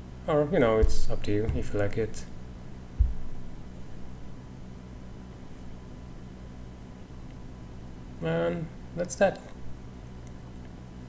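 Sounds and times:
low hum with hiss: 0.0s - 11.0s
soft low thump: 0.7s - 4.4s.

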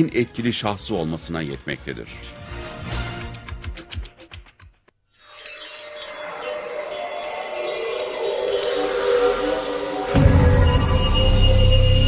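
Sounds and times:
shimmering chime: 5.1s - 12.0s
sustained tones: 5.2s - 12.0s.

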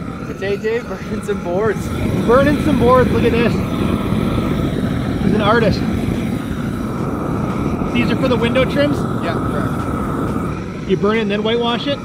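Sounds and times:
propane torch flame rushing: 0.0s - 12.0s.

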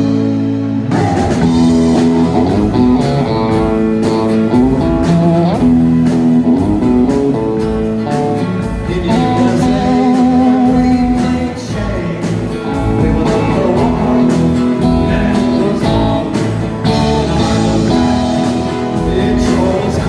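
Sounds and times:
drum kit beat: 0.0s - 20.0s
electric guitar: 0.0s - 20.0s
man singing: 8.4s - 20.0s.

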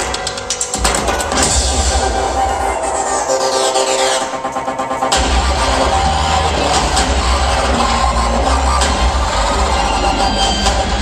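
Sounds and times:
electronic dance music with heavy bass: 0.0s - 11.0s.

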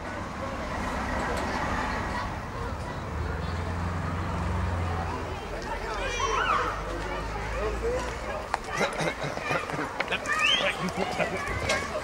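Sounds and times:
faint voices: 0.0s - 12.0s
low rumble of road traffic: 0.0s - 12.0s.

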